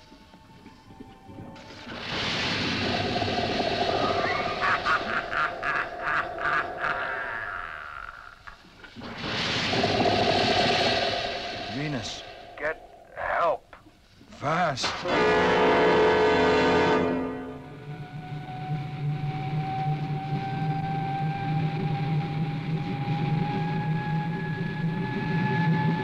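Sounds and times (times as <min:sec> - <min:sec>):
hissing jet noise with whine: 0:01.6 - 0:13.8.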